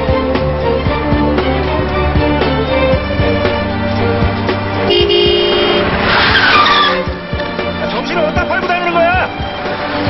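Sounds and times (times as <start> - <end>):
background music: 0.0 - 10.0
car horn: 4.8 - 7.0
tyres screeching: 5.3 - 8.1.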